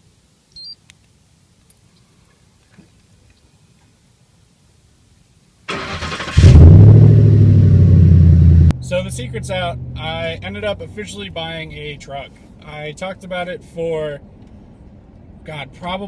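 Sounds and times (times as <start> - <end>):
engine cranking: 5.7 - 7.2.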